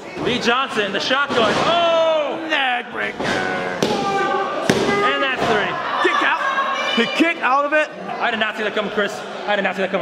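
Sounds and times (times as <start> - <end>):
voices shouting: 3.4 - 9.4
referee counting: 3.8 - 7.6.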